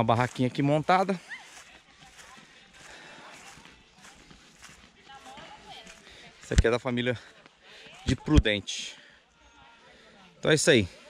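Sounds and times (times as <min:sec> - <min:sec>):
footsteps on dry grass and dirt: 0:00.0 - 0:08.5.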